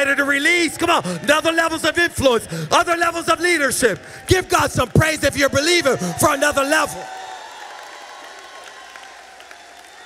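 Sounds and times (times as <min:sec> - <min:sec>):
congregation applauding: 0:05.5 - 0:10.0.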